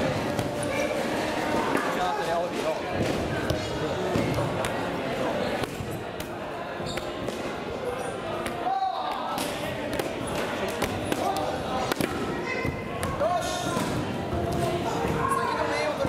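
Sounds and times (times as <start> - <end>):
echoing voices and shouts: 7.4 - 16.0.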